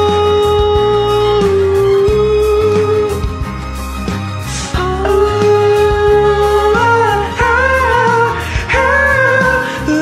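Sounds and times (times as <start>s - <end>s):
pop backing track: 0.0s - 10.0s.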